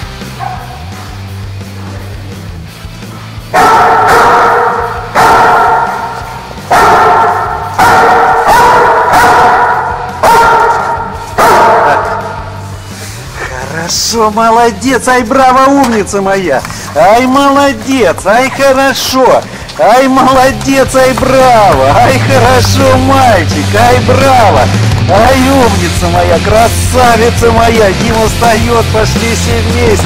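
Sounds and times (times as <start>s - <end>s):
dog barking: 0.3s - 2.1s, 3.5s - 12.5s.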